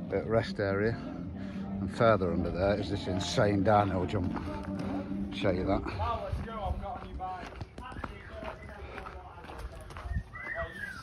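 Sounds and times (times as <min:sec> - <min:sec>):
faint voices of people: 0:00.9 - 0:11.0.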